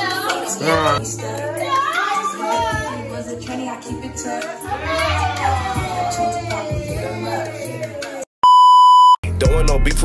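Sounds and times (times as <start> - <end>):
music with singing voice: 0.0 - 8.3, 9.2 - 10.0
buzzy test-tone beep: 8.4 - 9.2.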